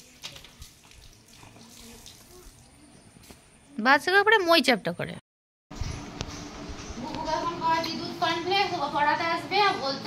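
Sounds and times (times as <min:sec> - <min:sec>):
water splashing and trickling: 0:00.0 - 0:02.9.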